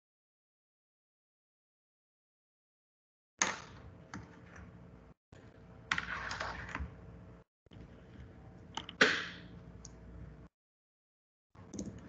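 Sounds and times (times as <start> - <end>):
computer clicks and taps: 8.7 - 9.1.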